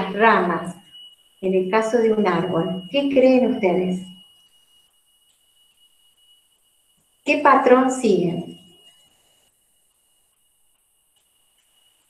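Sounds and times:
woman's voice: 0.0 - 0.8, 1.4 - 4.0, 7.3 - 8.5
faint high-pitched tone: 0.0 - 12.0.

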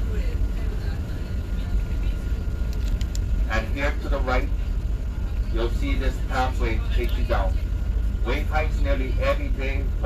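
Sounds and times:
bus engine rumble: 0.0 - 10.0
road noise: 0.0 - 10.0.

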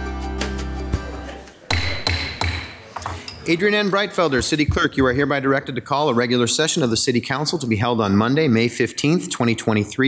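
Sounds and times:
intro music: 0.0 - 2.0
sharp knocks: 1.7 - 3.2.

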